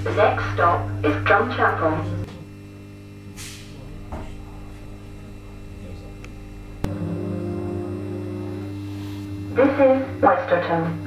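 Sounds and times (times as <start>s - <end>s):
train interior low hum: 3.2s - 10.8s.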